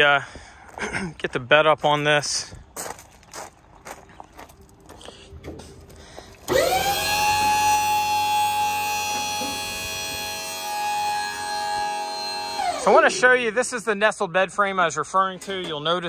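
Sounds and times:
hydraulic pump whining: 6.3s - 13.5s.

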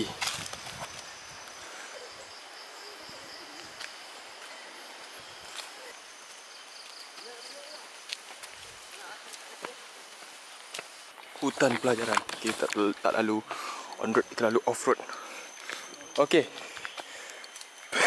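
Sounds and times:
footsteps on asphalt: 3.6s - 17.7s.

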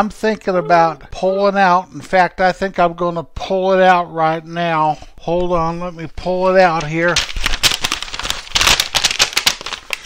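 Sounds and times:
tarp crinkling: 6.7s - 10.0s.

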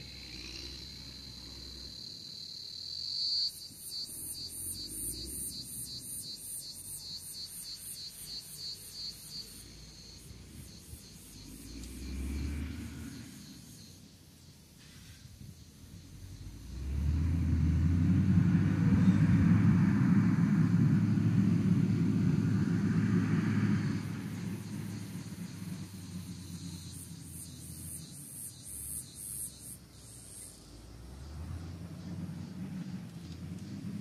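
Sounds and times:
diesel engine rumbling: 15.3s - 28.0s, 29.8s - 34.0s.

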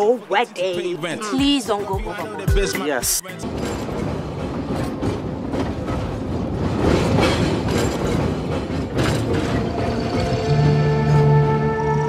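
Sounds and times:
clacks over rail joints: 3.4s - 10.3s
rumble of rolling train wheels: 3.4s - 12.0s.

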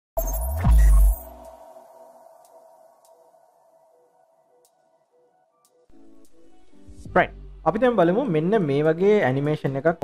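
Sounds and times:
electronic hit: 0.2s - 3.7s
ringing tone: 0.2s - 4.2s.

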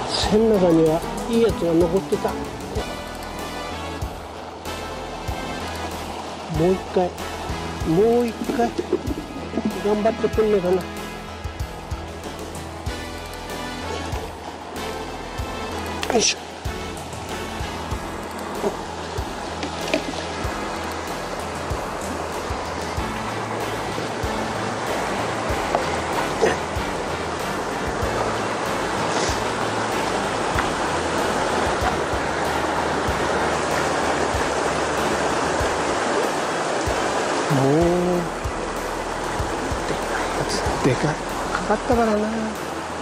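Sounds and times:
background music: 0.0s - 43.0s
river rushing over rocks: 0.0s - 43.0s.

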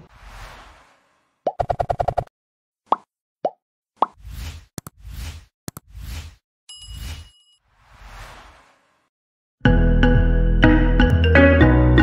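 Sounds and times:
whoosh: 0.0s - 1.4s, 7.7s - 9.1s.

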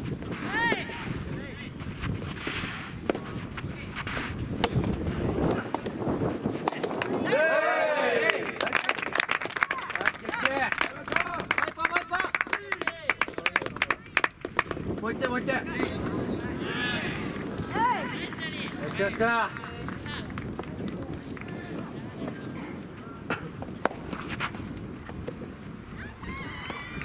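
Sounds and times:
racket hitting ball: 4.5s - 6.0s
people shouting: 7.2s - 8.4s
hand clapping: 8.3s - 14.8s.

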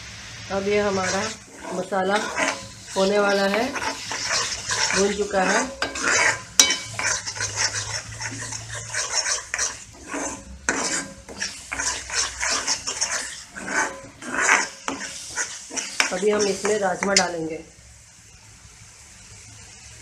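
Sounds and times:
paste sizzling: 0.0s - 17.8s
ladle scraping and stirring pan: 0.6s - 17.5s.

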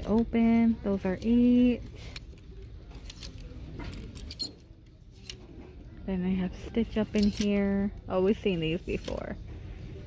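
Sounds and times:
plastic hangers clicking on metal rack: 7.0s - 7.8s.

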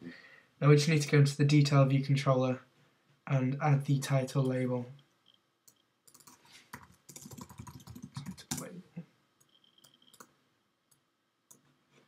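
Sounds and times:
computer keyboard typing: 6.1s - 8.7s, 9.4s - 10.3s.

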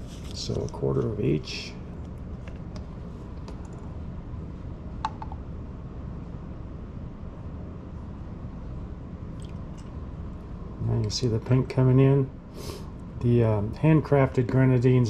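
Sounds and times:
steady low hum: 0.0s - 15.0s.

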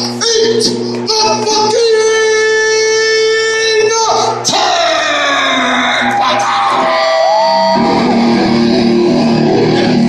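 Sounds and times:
rock band playing: 5.8s - 10.0s.

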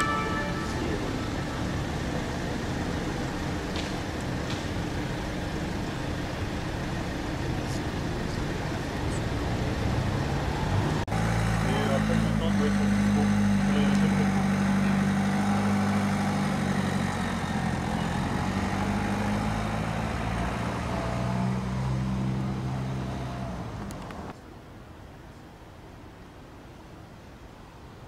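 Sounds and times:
voices: 0.0s - 10.5s, 11.2s - 21.6s
vehicle engine running: 0.0s - 24.3s
street background: 0.0s - 28.0s.

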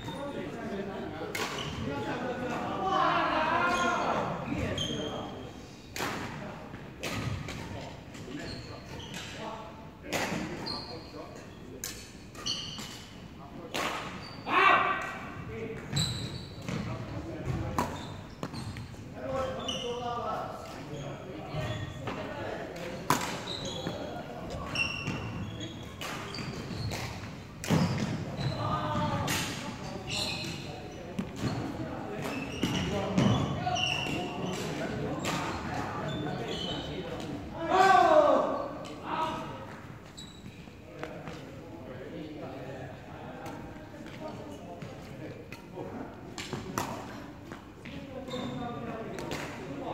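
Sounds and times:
voices in background: 0.0s - 49.9s.

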